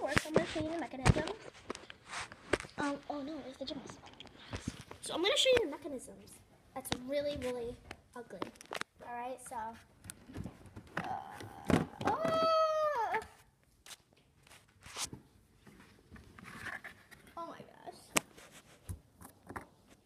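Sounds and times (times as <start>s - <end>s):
child's high-pitched vocal sound: 11.0s - 13.4s.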